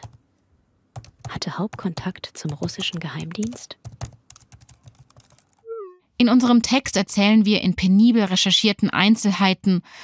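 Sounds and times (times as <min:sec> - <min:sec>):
typing on computer keyboard: 0:00.0 - 0:00.2, 0:01.0 - 0:05.6.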